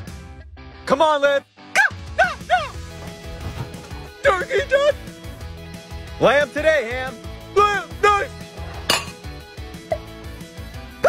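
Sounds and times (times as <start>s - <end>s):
background music: 0.0s - 11.0s
vocal cries: 1.8s - 3.1s.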